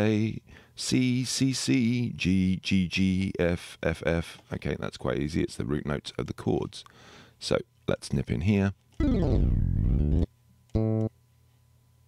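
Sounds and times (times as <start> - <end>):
sampled bass note: 9.0 - 11.1.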